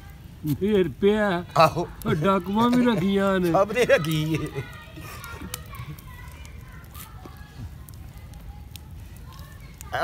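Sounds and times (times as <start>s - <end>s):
outdoor noise: 0.0s - 10.0s
faint background voices: 1.4s - 10.0s.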